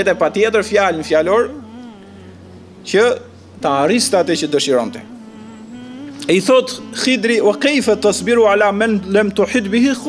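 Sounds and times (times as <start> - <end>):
man's voice holding a syllable: 0.0 - 2.2, 2.8 - 10.0.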